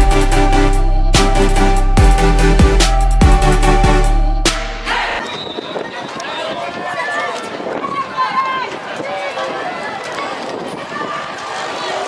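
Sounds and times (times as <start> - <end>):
overlapping voices calling out: 4.8 - 12.0.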